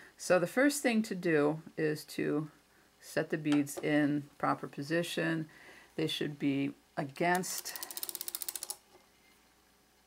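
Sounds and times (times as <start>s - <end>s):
abacus beads clicking: 7.4s - 8.8s.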